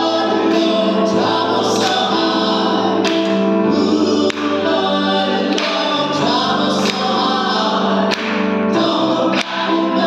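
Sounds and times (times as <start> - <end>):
vocal trio singing in harmony: 0.0 - 10.0
hand claps: 3.0 - 3.5, 4.2 - 4.6, 5.5 - 6.0, 6.7 - 7.2, 8.0 - 8.6, 9.3 - 9.7.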